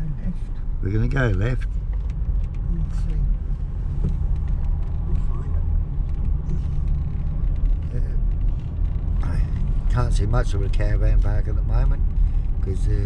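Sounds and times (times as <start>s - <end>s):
car cabin road rumble: 0.0s - 13.0s.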